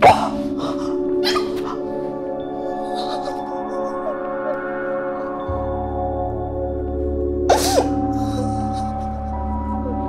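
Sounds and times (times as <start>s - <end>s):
bell-like tones over low drone: 0.4s - 10.0s
woman sobbing: 0.6s - 5.5s, 7.5s - 10.0s.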